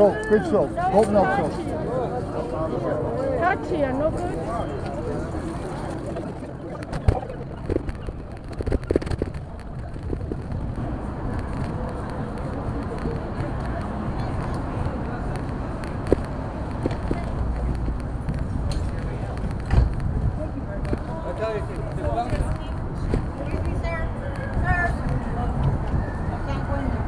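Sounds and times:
people talking nearby: 0:00.0 - 0:27.0
traffic rumble: 0:00.0 - 0:27.0.

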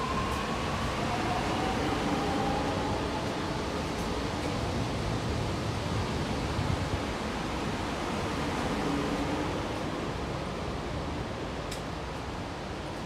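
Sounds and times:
metro carriage rumble and hiss: 0:00.0 - 0:13.0.

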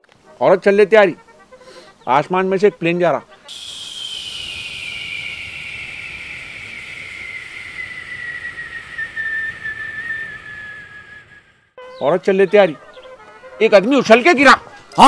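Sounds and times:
jet airplane passing overhead: 0:03.5 - 0:11.4.

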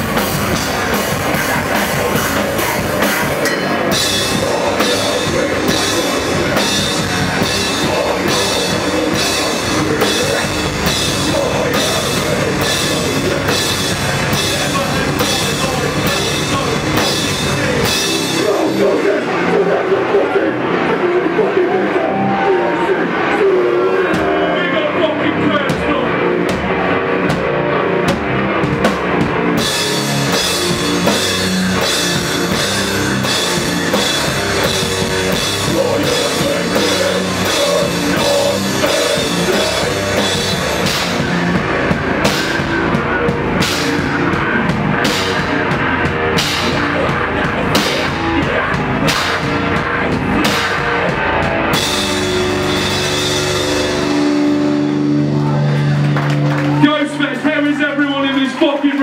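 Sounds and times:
bass: 0:00.0 - 0:59.0
distorted guitars: 0:00.0 - 0:59.0
drums: 0:00.0 - 0:59.0.

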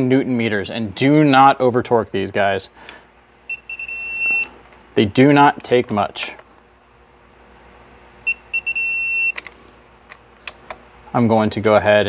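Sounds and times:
torque wrench beeping: 0:03.5 - 0:04.5, 0:08.2 - 0:09.4.

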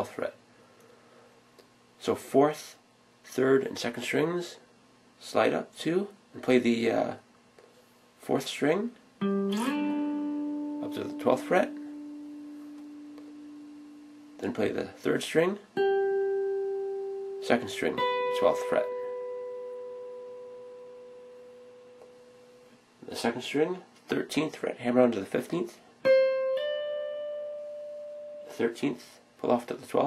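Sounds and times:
electric guitar note ringing: 0:09.2 - 0:22.7, 0:26.0 - 0:28.7.

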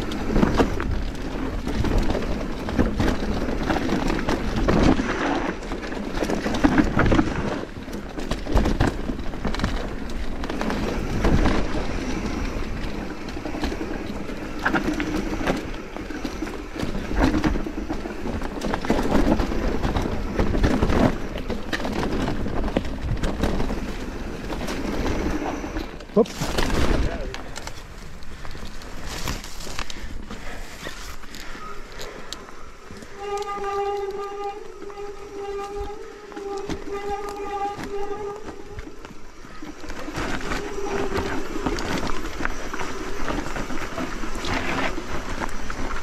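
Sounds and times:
bike clicking and rattling: 0:00.0 - 0:46.0
bike tyres rolling over dirt: 0:00.0 - 0:46.0.

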